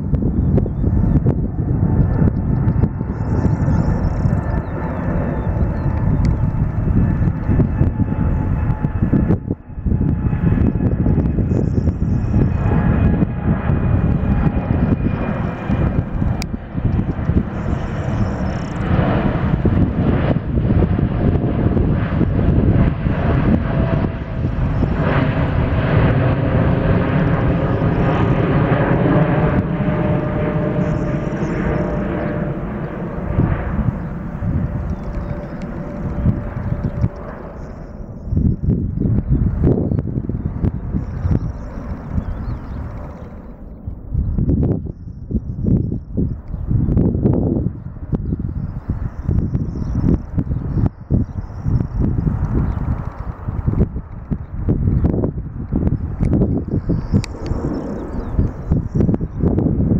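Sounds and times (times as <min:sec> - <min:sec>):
jet engines roaring overhead: 0:00.0 - 0:59.9.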